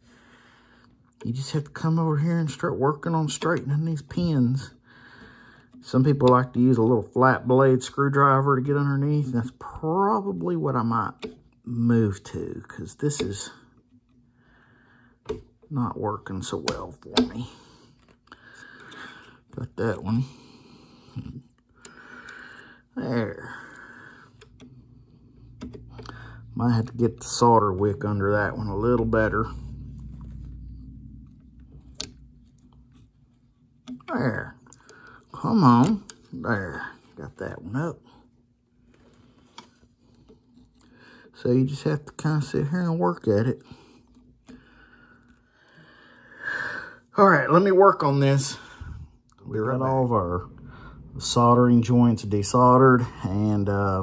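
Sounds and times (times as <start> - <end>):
faint room noise: 0.0 - 54.0
faint steady hiss: 0.0 - 54.0
metal pick clicking on pins: 25.5 - 26.4.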